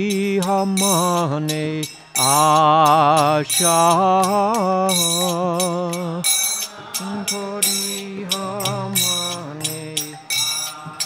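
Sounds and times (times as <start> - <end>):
man singing devotional song: 0.0 - 11.0
small hand cymbals ringing: 0.0 - 11.0.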